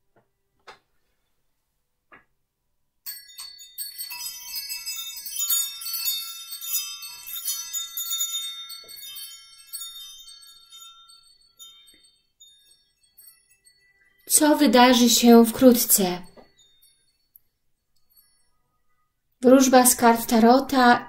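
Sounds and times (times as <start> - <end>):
metal chimes ringing: 3.1 - 20.4.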